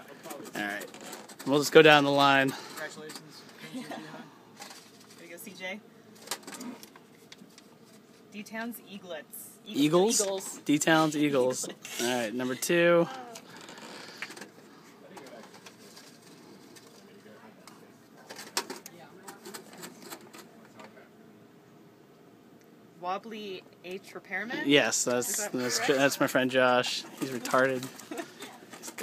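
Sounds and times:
low room murmur: 9.6s - 29.0s
paper crackling being unfolded: 15.2s - 17.2s.

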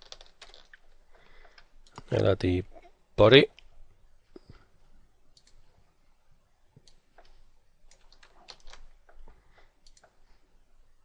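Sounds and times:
keyboard and mouse clicks: 0.0s - 2.1s, 5.3s - 5.6s, 6.8s - 10.2s.

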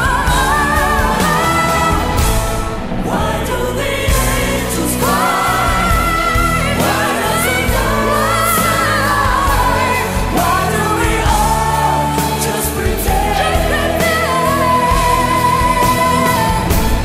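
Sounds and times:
backing choir: 0.0s - 17.0s
female lead vocal: 0.0s - 17.0s
pop band: 0.0s - 17.0s.

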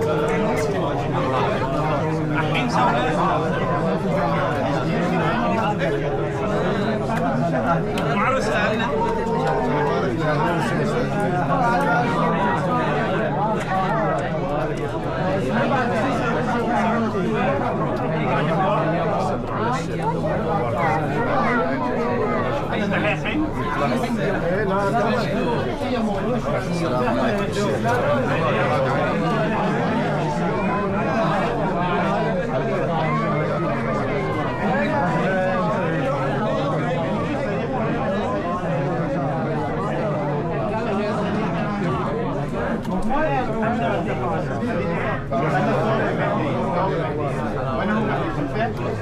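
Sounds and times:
men chattering: 0.0s - 49.0s
men talking over one another: 0.0s - 49.0s.

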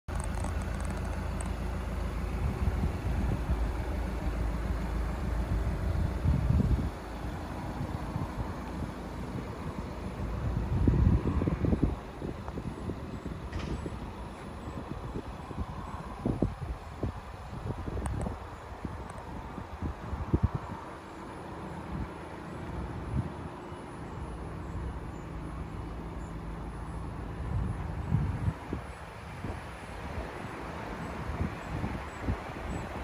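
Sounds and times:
wind buffeting microphone: 0.1s - 25.9s, 27.1s - 33.0s.

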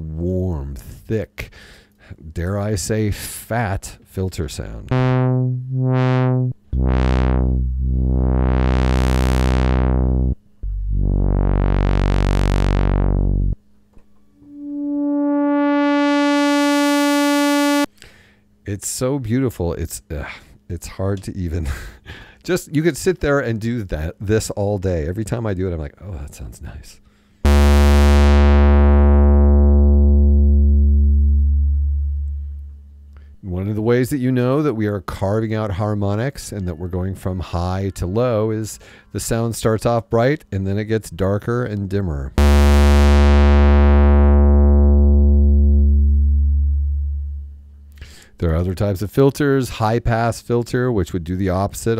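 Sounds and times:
synthesizer filter sweep: 4.9s - 13.6s, 14.4s - 17.9s, 27.5s - 32.9s, 42.4s - 47.9s.

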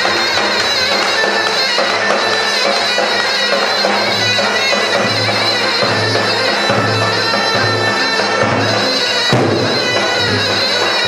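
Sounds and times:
steady drum beat: 0.0s - 11.0s
wind instrument melody: 0.0s - 11.0s.

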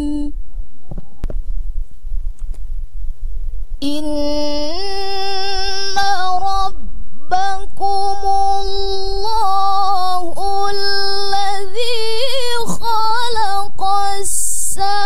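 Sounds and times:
woman reciting melodically: 0.0s - 0.4s, 3.8s - 15.0s.

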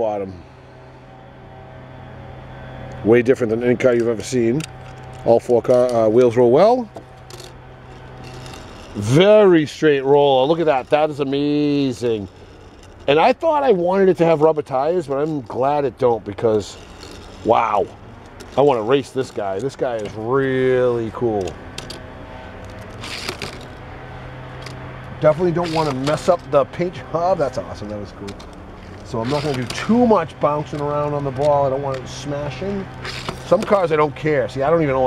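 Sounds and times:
low steady hum: 0.0s - 35.0s
toy car rolling on wood: 7.1s - 22.0s, 22.6s - 23.8s, 25.6s - 26.6s, 27.6s - 33.8s
toy car scraping on plastic track: 7.4s - 9.2s, 10.3s - 13.3s, 16.4s - 17.6s, 22.9s - 23.8s, 25.6s - 26.4s, 29.1s - 30.1s, 33.0s - 33.7s.

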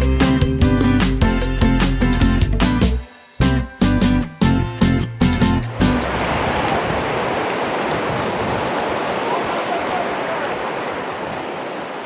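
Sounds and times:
small waves washing over sand: 6.0s - 12.0s.

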